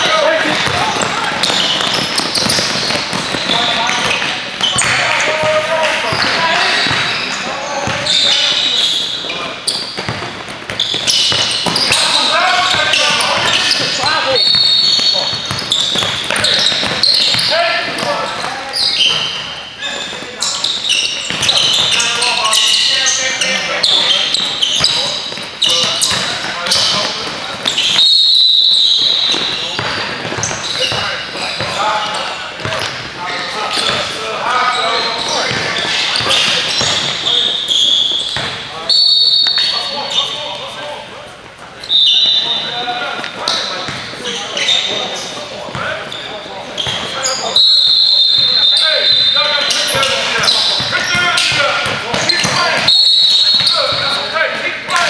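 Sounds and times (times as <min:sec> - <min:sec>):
high squeals: 0:00.0 - 0:10.0, 0:10.8 - 0:29.8, 0:34.5 - 0:40.6, 0:41.8 - 0:45.4, 0:46.0 - 0:51.6, 0:52.2 - 0:54.4
players' voices echoing: 0:00.0 - 0:55.0
basketball bouncing on hardwood: 0:00.6 - 0:05.4, 0:10.0 - 0:11.9.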